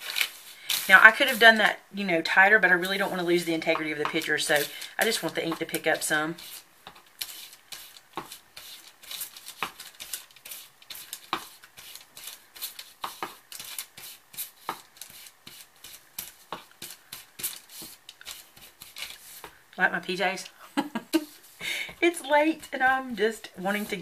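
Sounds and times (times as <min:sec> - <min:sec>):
foam pad scuffing on paper: 0:07.2 - 0:19.6, 0:23.6 - 0:24.0.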